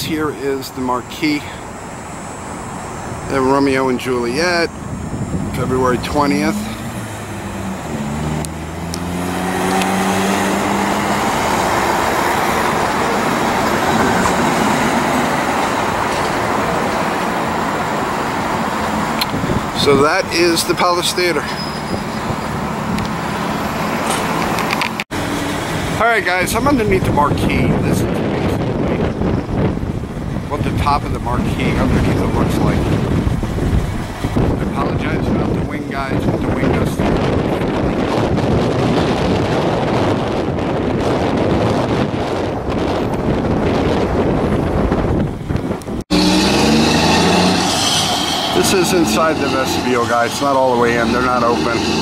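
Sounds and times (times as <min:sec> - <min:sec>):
city street traffic rumble: 0:00.0 - 0:52.0
wind buffeting microphone: 0:00.0 - 0:52.0.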